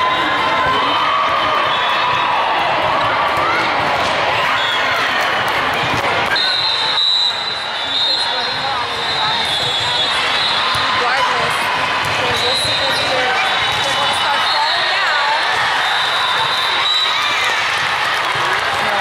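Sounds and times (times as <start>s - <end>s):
volleyballs hit and bouncing: 0.2s - 6.6s, 8.4s - 19.0s
many voices overlapping: 7.4s - 15.8s.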